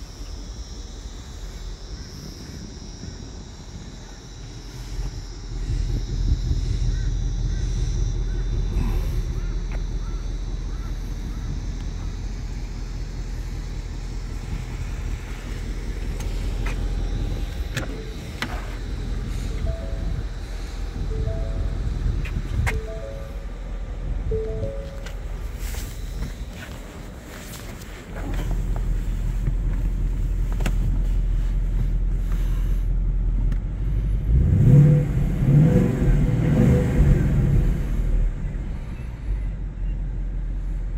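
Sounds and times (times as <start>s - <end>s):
car engine idling: 0.0s - 40.9s
car door unlatching clicks: 17.5s - 18.8s.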